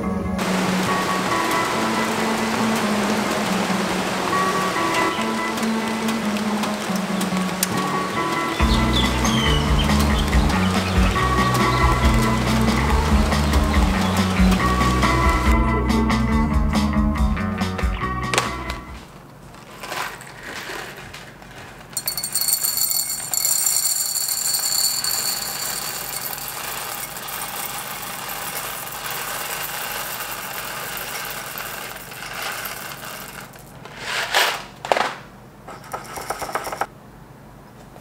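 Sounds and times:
coffee beans rattling into glass jar: 22.0s - 33.8s.

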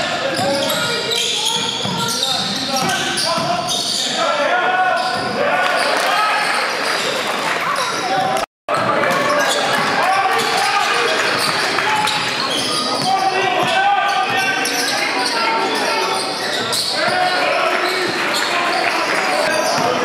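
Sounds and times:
voices: 0.0s - 20.0s
sneakers squeaking: 0.2s - 20.0s.

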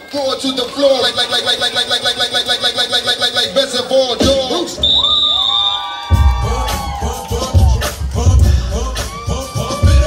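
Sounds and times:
dance music: 0.0s - 10.0s
children shouting and cheering: 5.0s - 10.0s.

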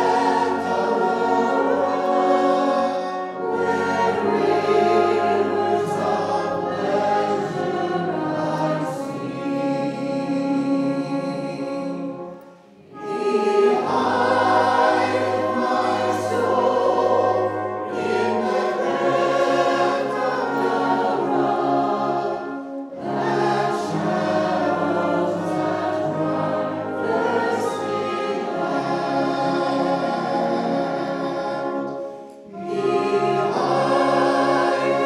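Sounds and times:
brass band playing: 0.0s - 35.0s
congregation singing a hymn: 0.0s - 35.0s.

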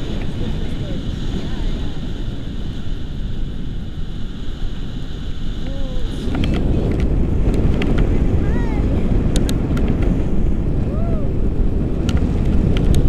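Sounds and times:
wind rushing over microphone: 0.0s - 13.0s.

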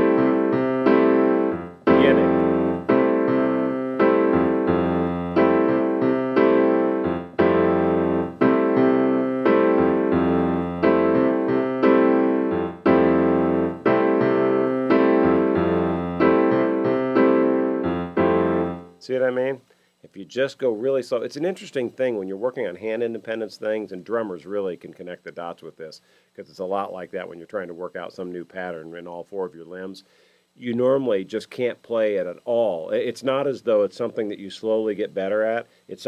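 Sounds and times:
piano playing bossa nova rhythm: 0.0s - 19.0s.

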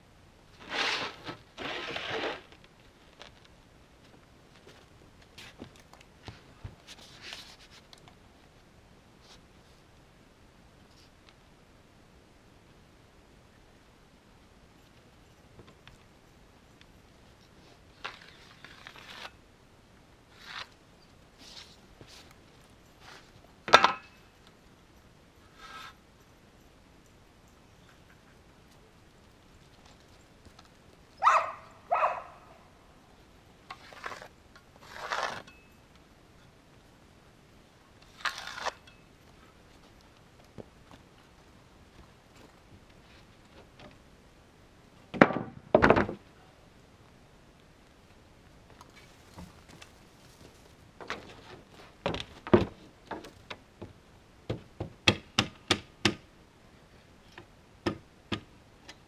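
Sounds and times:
dog barking: 31.2s - 32.6s.

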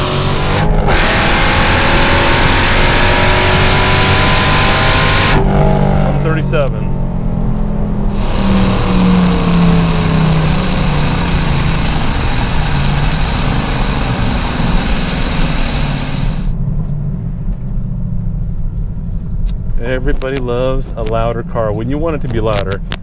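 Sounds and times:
car engine drone: 0.0s - 23.0s
wind and road rush: 0.0s - 23.0s.

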